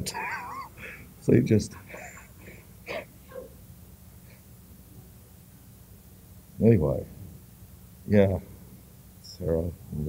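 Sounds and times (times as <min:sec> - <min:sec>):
breathy chuckles: 0:00.0 - 0:01.0, 0:01.7 - 0:03.1
low recording hum: 0:00.0 - 0:10.0.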